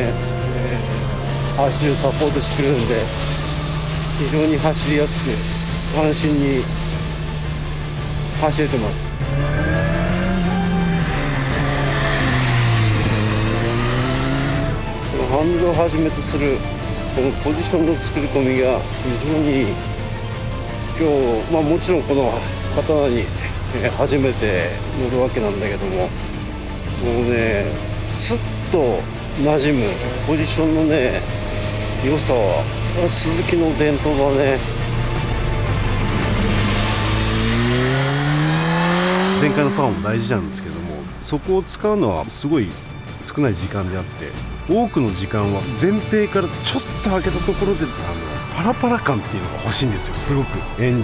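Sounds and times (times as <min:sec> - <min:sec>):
motorcycle engine cornering: 0:00.0 - 0:17.5, 0:22.4 - 0:42.0.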